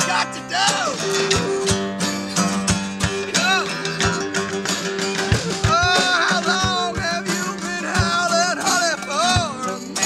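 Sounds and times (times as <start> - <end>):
acoustic guitars strumming blues: 0.0 - 10.0
person singing: 3.1 - 4.5, 5.2 - 10.0.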